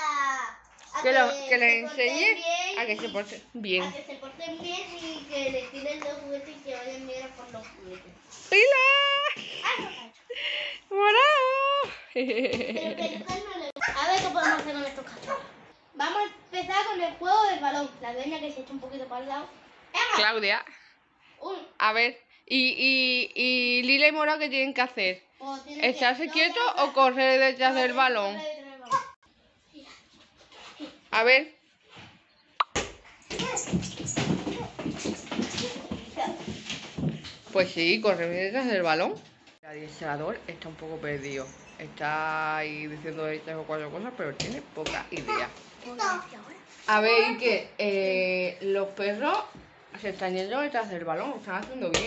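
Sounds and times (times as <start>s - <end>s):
children making dog-like noises: 0.0s - 0.7s, 13.4s - 15.6s, 28.8s - 29.2s, 35.6s - 36.5s
child yipping like a puppy: 13.8s - 15.4s.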